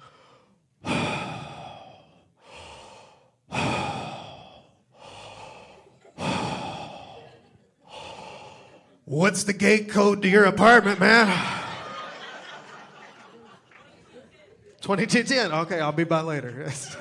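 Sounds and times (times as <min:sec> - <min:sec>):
man breathing heavily: 0:00.0 - 0:09.1.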